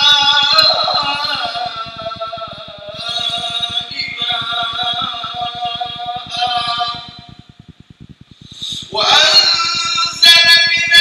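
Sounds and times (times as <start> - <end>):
man reciting melodically: 0.0 - 7.5, 8.4 - 11.0.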